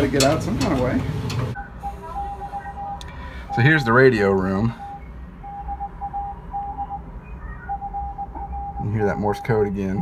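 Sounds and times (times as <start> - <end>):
low background hum: 0.0 - 10.0
morse code beeps: 1.6 - 10.0.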